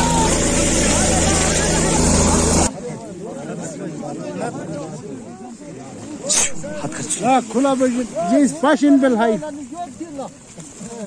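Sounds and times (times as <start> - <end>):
helicopter engine and rotor: 0.0 - 2.7
people shouting: 0.0 - 2.7
crowd chatter: 0.0 - 11.0.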